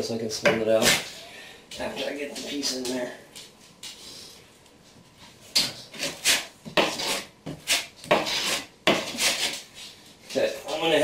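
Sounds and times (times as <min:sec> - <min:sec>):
trowel scraping mortar: 0:05.6 - 0:09.7.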